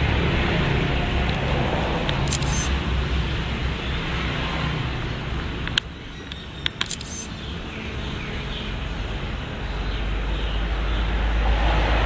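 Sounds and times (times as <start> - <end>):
sharp click: 2.0 - 2.7, 5.6 - 7.3.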